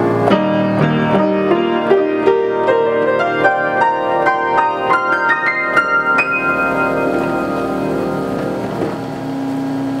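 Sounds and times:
player piano notes: 0:00.0 - 0:10.0
low steady tone: 0:05.6 - 0:09.1.

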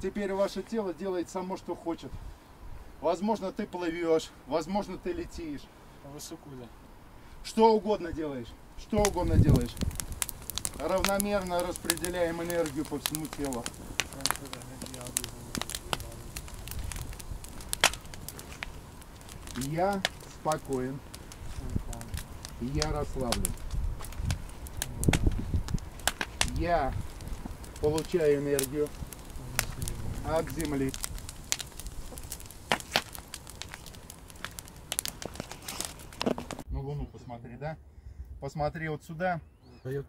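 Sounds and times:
campfire crackling: 0:00.0 - 0:36.7
sharp fire pops: 0:08.8 - 0:36.7.

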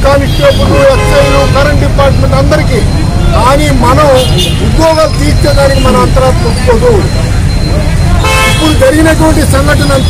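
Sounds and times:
street and crowd noise: 0:00.0 - 0:10.0
vehicle horn honk: 0:00.6 - 0:01.6, 0:08.2 - 0:08.8.

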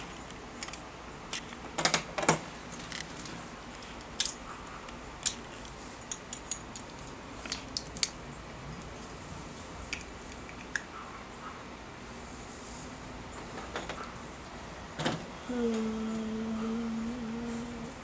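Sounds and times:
plastic bricks clicking and clattering: 0:01.8 - 0:04.4, 0:05.2 - 0:08.2.

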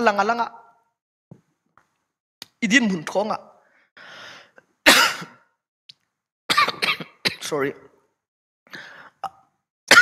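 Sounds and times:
intake of breath: 0:03.6 - 0:04.7, 0:08.7 - 0:09.2
man coughing: 0:04.9 - 0:05.6, 0:06.5 - 0:07.6.

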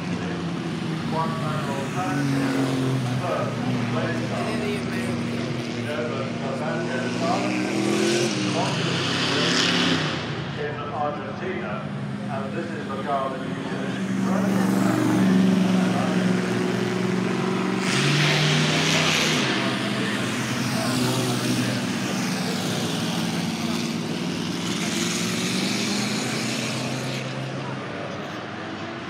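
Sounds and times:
racing car engine: 0:00.0 - 0:29.0
car engine accelerating past: 0:06.8 - 0:10.6, 0:12.2 - 0:29.0.

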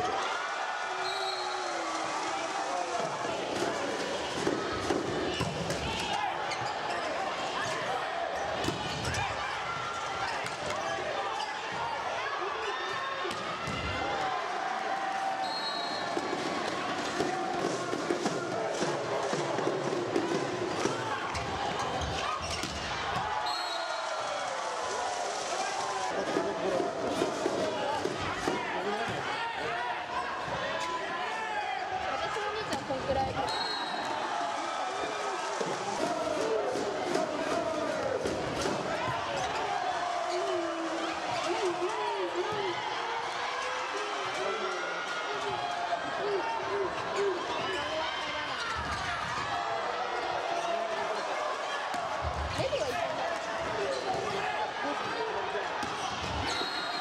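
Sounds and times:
spectators cheering: 0:00.0 - 0:57.0.

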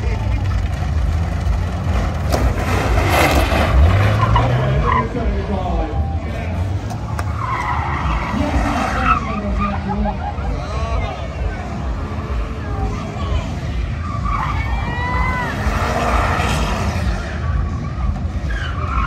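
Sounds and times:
car engines revving high: 0:00.0 - 0:19.0
tires skidding and squealing: 0:00.0 - 0:19.0.

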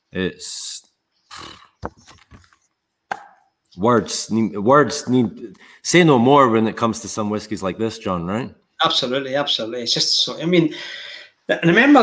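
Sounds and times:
person sniffing: 0:01.3 - 0:01.8.

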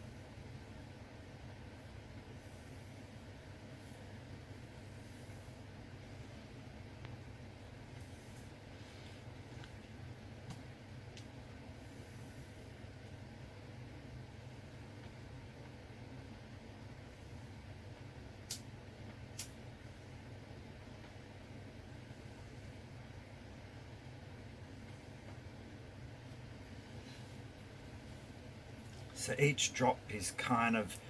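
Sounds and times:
low room hum: 0:00.0 - 0:31.0.

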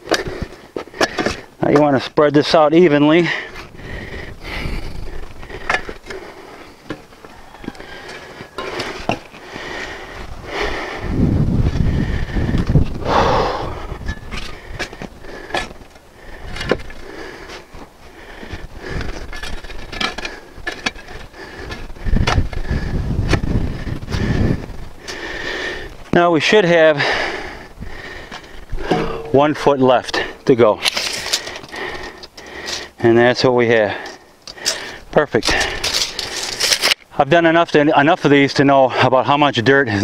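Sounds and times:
shovel scraping soil: 0:35.7 - 0:37.0.

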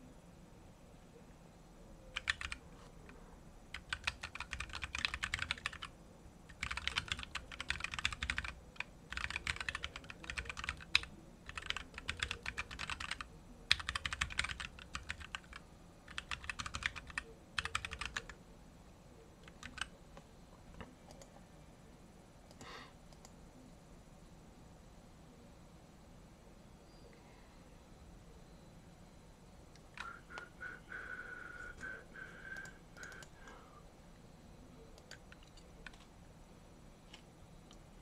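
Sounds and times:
typing on computer keyboard: 0:02.2 - 0:02.6, 0:03.7 - 0:05.9, 0:06.5 - 0:18.4, 0:19.4 - 0:19.9, 0:32.6 - 0:33.3, 0:35.0 - 0:36.1.

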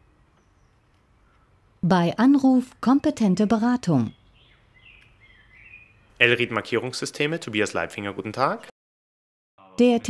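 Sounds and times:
birds chirping and warbling: 0:00.0 - 0:01.8, 0:02.4 - 0:07.3
outdoor background noise: 0:00.0 - 0:08.7.

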